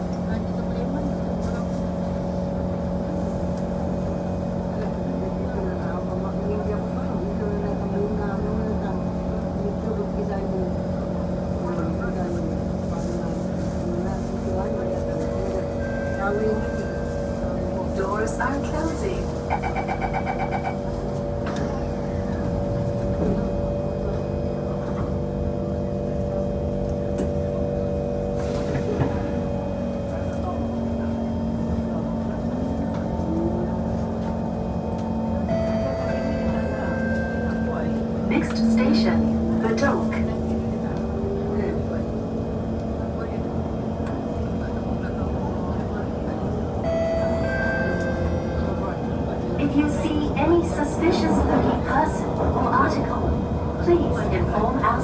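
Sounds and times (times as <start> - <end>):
train running noise: 0.0 - 55.0
train traction motor whine: 0.0 - 55.0
voices in carriage: 0.0 - 55.0
wheels clacking on rails: 11.5 - 55.0.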